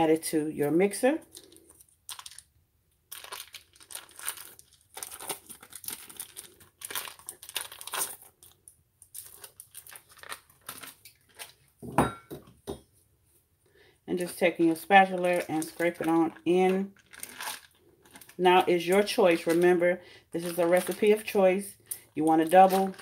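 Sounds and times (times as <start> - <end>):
foil wrapper crinkling and tearing: 1.2 - 11.8, 14.2 - 23.0.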